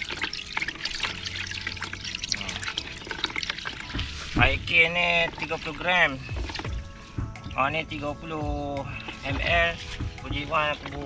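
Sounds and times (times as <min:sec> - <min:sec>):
liquid trickling into a basin: 0:00.0 - 0:11.0.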